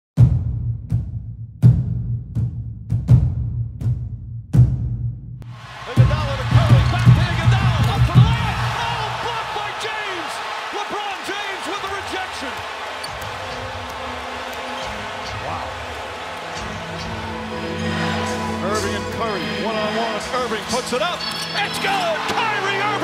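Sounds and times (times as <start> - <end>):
music: 0.2 - 9.4, 13.1 - 23.0
arena crowd noise: 5.4 - 23.0
basketball bouncing: 11.8 - 16.8.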